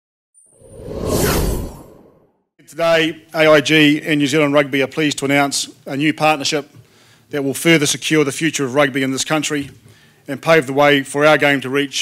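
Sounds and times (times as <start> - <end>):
whoosh sound effect: 0.5 - 2.3.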